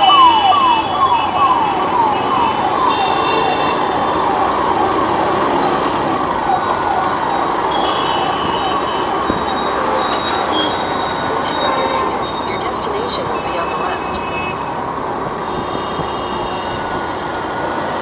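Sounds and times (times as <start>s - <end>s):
siren wailing: 0.0s - 14.9s
city traffic noise: 0.0s - 18.0s
car horns: 2.2s - 4.0s, 7.7s - 14.8s, 15.4s - 17.2s.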